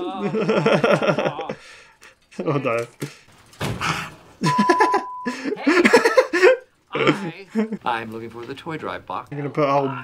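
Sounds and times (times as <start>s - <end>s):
voices and chuckling: 0.0s - 3.0s, 4.4s - 7.9s
high-pitched beep: 4.5s - 5.3s.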